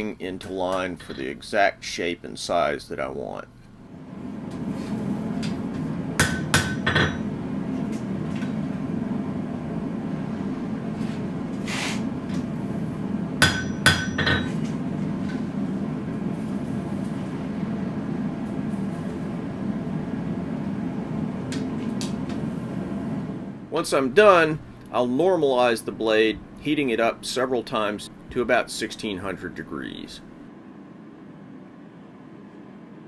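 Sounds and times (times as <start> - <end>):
hammer striking steel on anvil: 6.2 - 7.3, 13.4 - 14.6.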